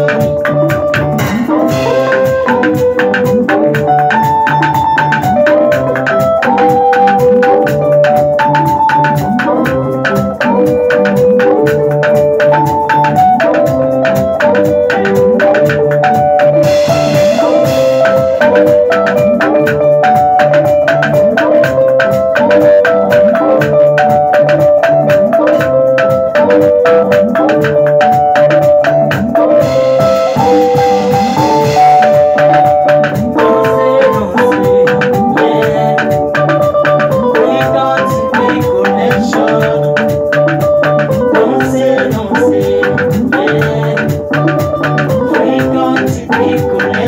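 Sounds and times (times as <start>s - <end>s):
band playing instrumental: 0.0s - 47.0s.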